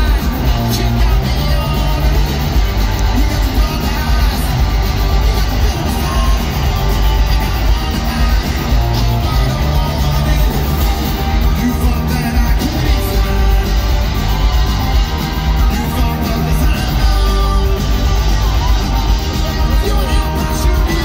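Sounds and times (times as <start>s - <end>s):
bass guitar: 0.0s - 21.0s
drums: 0.0s - 21.0s
electric guitars: 0.0s - 21.0s
person singing: 0.0s - 21.0s.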